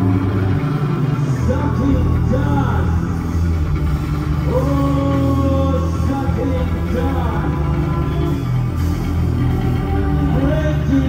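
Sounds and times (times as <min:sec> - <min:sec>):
live band low drone: 0:00.0 - 0:11.0.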